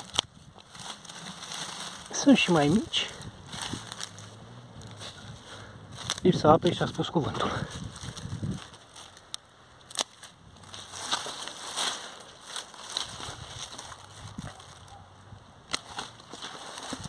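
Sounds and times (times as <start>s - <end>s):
rustling of dry leaves: 0.0s - 17.0s
pruning shears snipping stems: 8.7s - 13.1s, 15.7s - 17.0s.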